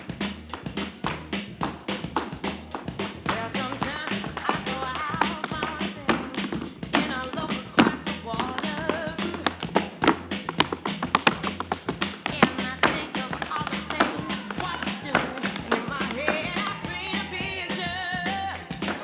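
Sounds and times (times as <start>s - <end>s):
recorded music: 0.0s - 19.0s
tap shoes clicking on stage: 0.0s - 19.0s.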